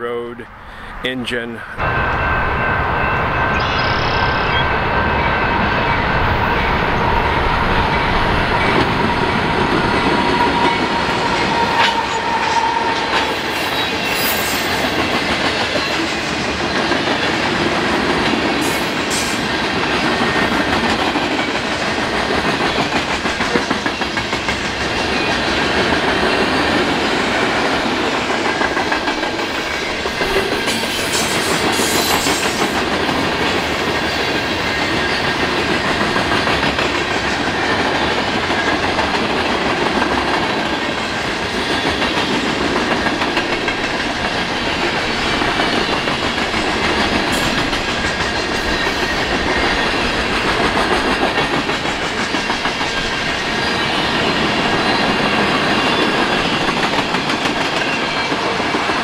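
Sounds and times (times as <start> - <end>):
train wheels on rails: 1.6 - 59.0.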